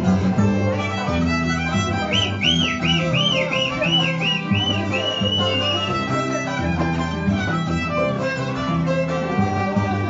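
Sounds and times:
high swooping string melody: 0:00.0 - 0:10.0
plucked bass notes: 0:00.0 - 0:10.0.

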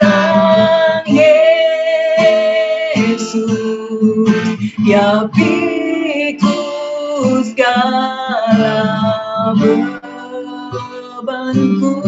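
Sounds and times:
strummed acoustic guitar: 0:00.0 - 0:12.0
woman singing into microphone: 0:00.0 - 0:12.0.

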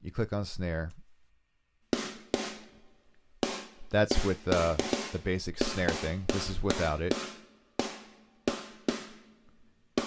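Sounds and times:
snare drum hits ringing: 0:02.0 - 0:02.7, 0:03.4 - 0:09.3.

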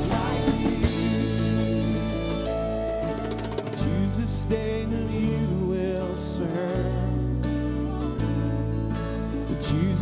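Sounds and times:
guitar strumming: 0:00.0 - 0:10.0
keyboard chords: 0:00.0 - 0:10.0
sustained bass: 0:00.0 - 0:10.0.

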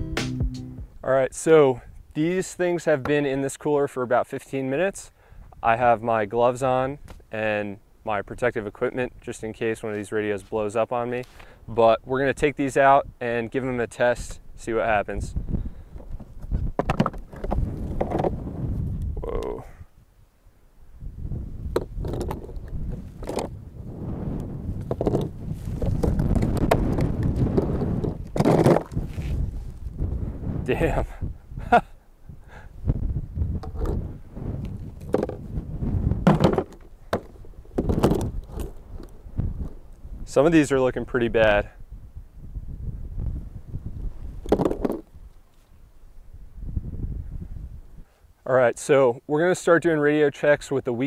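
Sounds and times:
low rumble: 0:00.0 - 0:01.0
wind rumble on microphone: 0:14.2 - 0:20.1, 0:20.8 - 0:48.1
plastic radios scraping and knocking: 0:16.0 - 0:18.4, 0:21.7 - 0:23.6, 0:24.8 - 0:29.4, 0:33.6 - 0:34.0, 0:35.0 - 0:35.5, 0:36.2 - 0:39.8, 0:44.4 - 0:45.1
radios knocking together: 0:16.8 - 0:18.4, 0:36.2 - 0:38.3.

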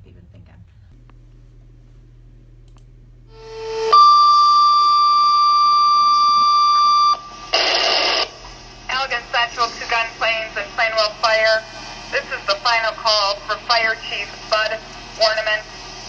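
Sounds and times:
radio paging tones: 0:03.4 - 0:08.4
radio static burst: 0:07.4 - 0:15.8.

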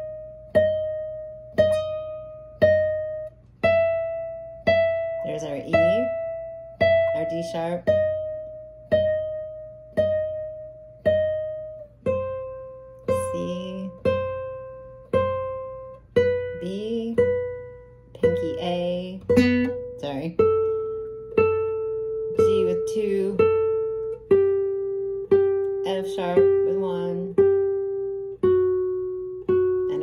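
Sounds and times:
plucked classical guitar note: 0:00.0 - 0:30.0.

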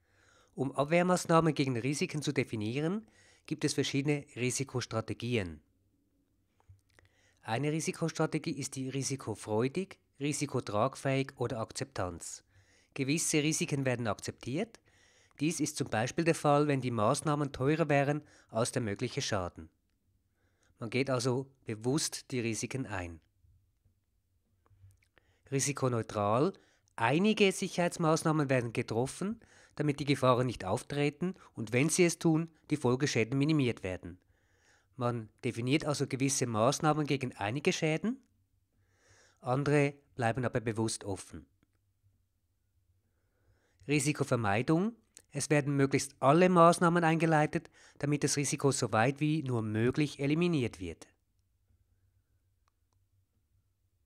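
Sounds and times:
man's voice: 0:00.6 - 0:05.6, 0:07.5 - 0:12.4, 0:15.4 - 0:19.7, 0:20.8 - 0:23.2, 0:25.5 - 0:34.2, 0:35.0 - 0:38.2, 0:39.4 - 0:41.5, 0:43.9 - 0:51.1.

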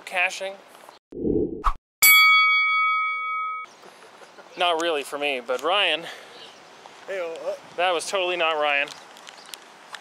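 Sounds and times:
bell-like metallic chime: 0:02.0 - 0:03.7.

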